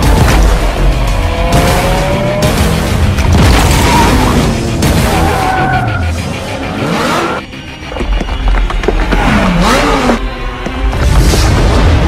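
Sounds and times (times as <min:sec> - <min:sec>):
music soundtrack: 0:00.0 - 0:12.0
car engine revving: 0:09.2 - 0:10.3.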